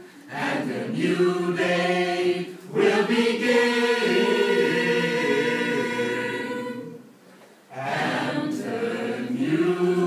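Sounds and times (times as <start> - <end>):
choir singing chords: 0.2 - 7.1, 7.7 - 10.0.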